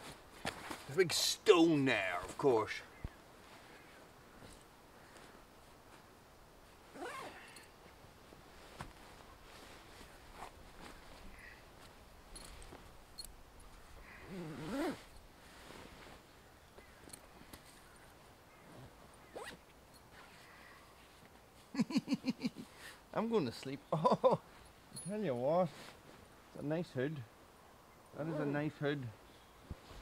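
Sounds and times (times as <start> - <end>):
sleeping bag rustling: 4.3 - 13.1, 13.7 - 21.7
zip being drawn closed: 6.9 - 7.6, 14.2 - 15.1, 19.3 - 19.6.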